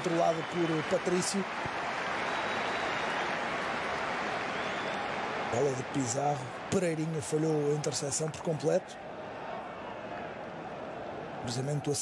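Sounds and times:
stadium crowd hum: 0.0 - 12.0.

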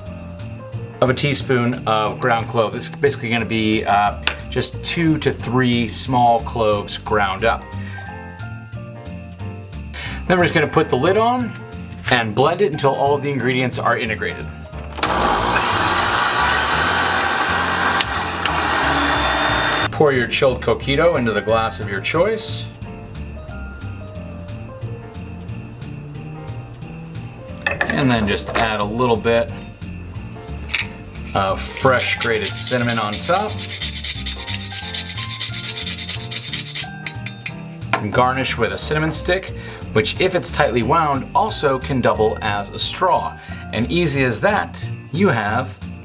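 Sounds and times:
blender motor whirring: 14.9 - 19.9
cinnamon stick grated on rasp: 15.0 - 19.9, 31.2 - 37.1.

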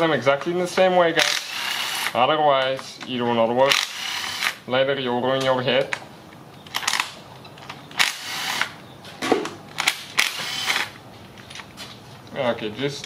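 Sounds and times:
cordless power tool running: 8.0 - 8.8, 10.2 - 11.0.

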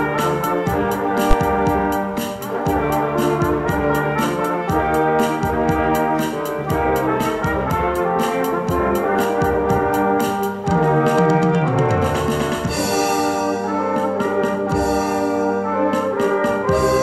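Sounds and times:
brass group playing lively tune: 0.0 - 17.0.

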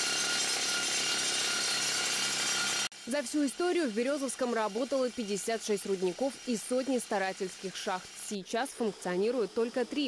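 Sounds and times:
pneumatic rock drill: 0.0 - 10.0.

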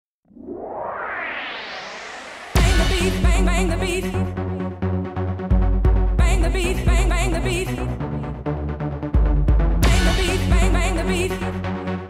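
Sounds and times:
sustained synth swell: 0.3 - 3.6.

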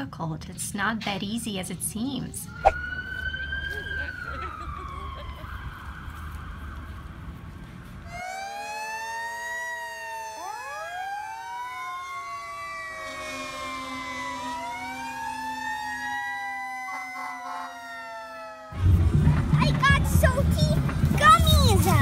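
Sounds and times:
fire engine sirens wailing: 2.5 - 19.5.

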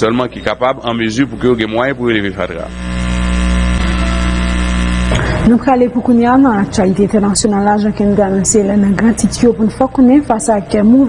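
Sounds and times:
loud steady hum: 1.4 - 10.7.

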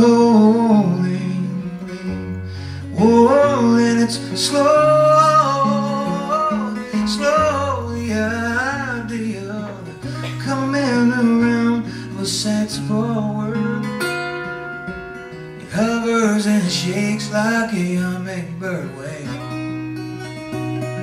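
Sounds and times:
man singing: 0.0 - 2.0, 2.8 - 14.4, 15.6 - 19.6
acoustic guitar playing: 0.0 - 21.0.

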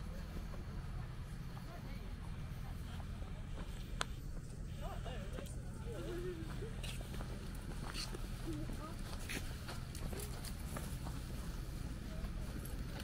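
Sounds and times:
low steady rumble: 0.0 - 13.0
footstep clicks: 6.4 - 13.0.

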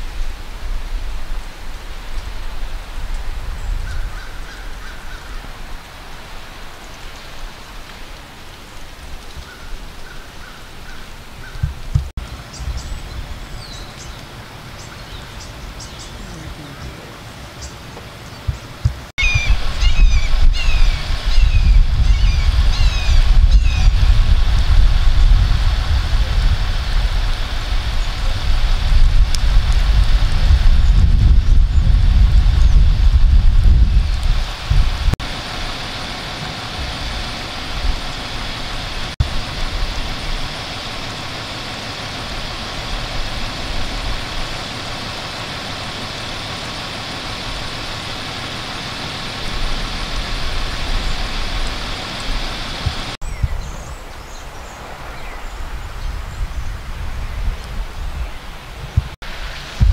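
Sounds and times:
fire engine running: 10.6 - 53.2.

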